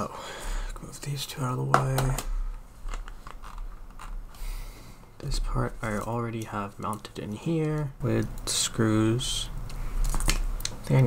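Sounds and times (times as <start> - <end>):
plastic parts clicking and rattling: 2.9 - 4.3, 10.0 - 10.8.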